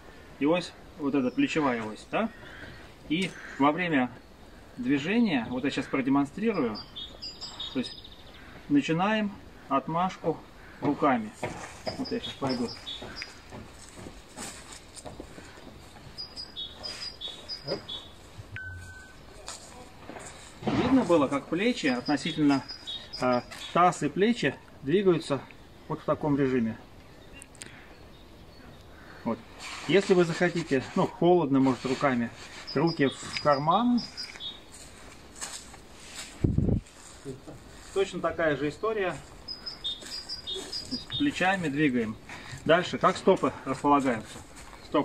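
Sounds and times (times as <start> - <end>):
footsteps on dry grass: 11.0 - 23.8, 31.7 - 45.0.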